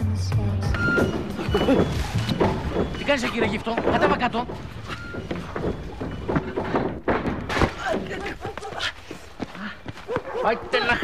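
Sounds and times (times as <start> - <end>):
dull thump: 0.7 - 8.4
voices speaking: 0.9 - 6.8, 7.6 - 11.0.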